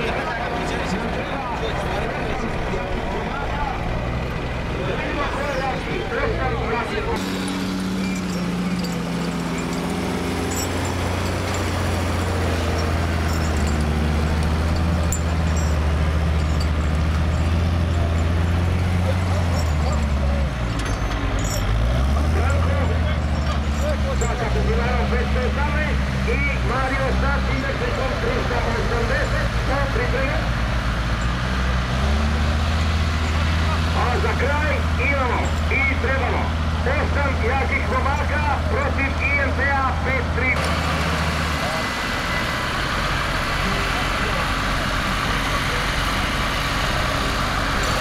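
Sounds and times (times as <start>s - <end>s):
diesel engine under load: 0.0s - 48.0s
voices of bystanders: 0.0s - 48.0s.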